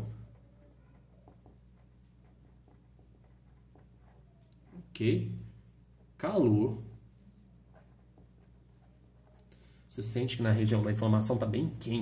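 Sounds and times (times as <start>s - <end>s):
marker scratching on paper: 0.0s - 5.0s, 7.6s - 9.5s.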